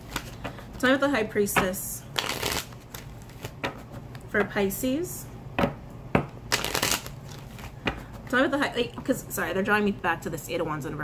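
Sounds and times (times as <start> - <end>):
cards riffling: 2.2 - 3.6, 6.5 - 7.8.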